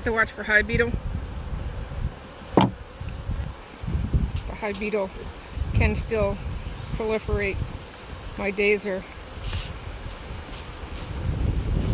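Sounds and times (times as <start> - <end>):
bees buzzing: 0.0 - 11.8
short knock: 2.6 - 2.8.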